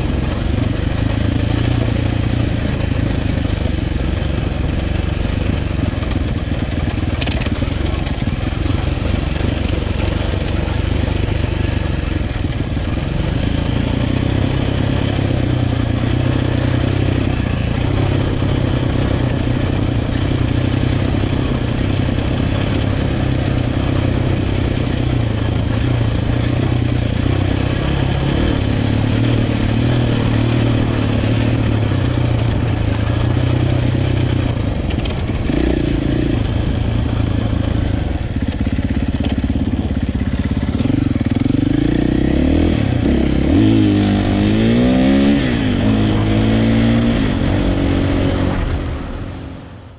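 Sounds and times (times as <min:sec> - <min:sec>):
motorcycle engine revving: 0:00.0 - 0:49.9.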